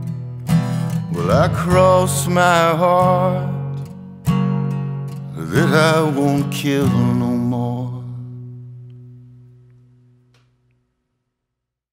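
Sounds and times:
acoustic guitar chord ringing: 0.0s - 10.4s.

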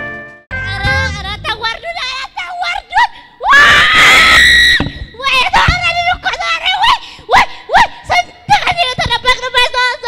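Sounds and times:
woman screaming into microphone: 3.4s - 4.9s.

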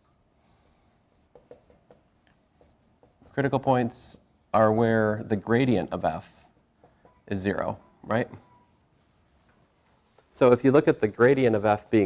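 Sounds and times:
marker writing on whiteboard: 0.0s - 9.0s.

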